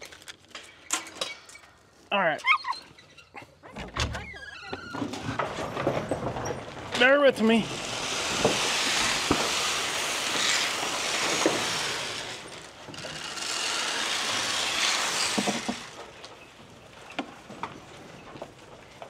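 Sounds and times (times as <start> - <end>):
dry feed pouring into trough: 7.1 - 16.1.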